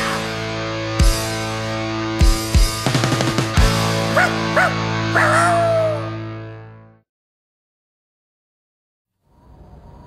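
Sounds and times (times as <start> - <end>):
rock song chord ringing out: 0.0 - 7.0
dog-like yelps: 4.2 - 6.1.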